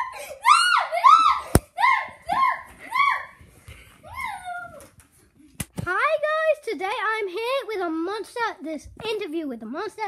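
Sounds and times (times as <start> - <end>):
child's high-pitched squeal: 0.0 - 3.4.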